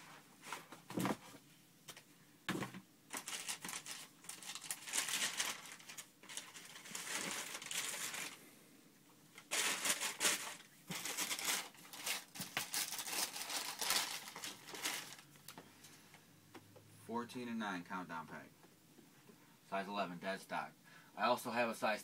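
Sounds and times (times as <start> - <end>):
paper crinkling and rustling: 3.1 - 8.4, 9.4 - 15.6.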